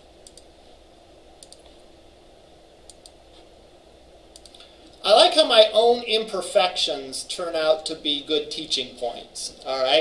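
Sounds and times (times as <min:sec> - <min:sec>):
low steady hum: 0:00.0 - 0:10.0
computer key clicks: 0:00.2 - 0:00.5, 0:01.4 - 0:01.8, 0:02.9 - 0:03.2, 0:04.3 - 0:04.7.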